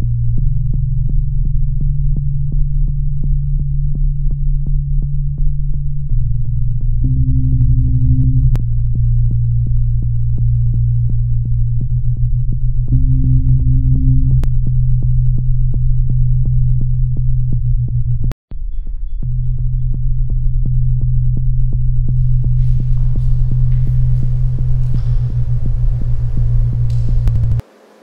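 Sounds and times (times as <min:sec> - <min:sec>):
low synthesizer drone: 0:00.0 - 0:18.3, 0:19.2 - 0:28.0
regular clicking pulse: 0:23.7 - 0:27.6.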